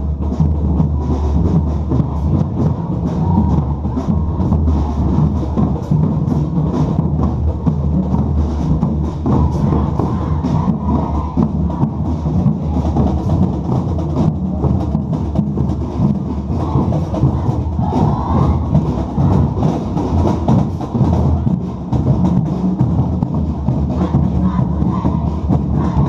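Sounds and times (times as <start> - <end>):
bass drum beat: 0.0 - 26.0
marching band playing: 0.0 - 26.0.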